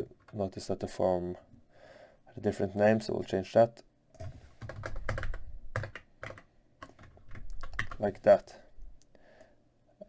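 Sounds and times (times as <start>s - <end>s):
typing on computer keyboard: 4.2s - 8.1s.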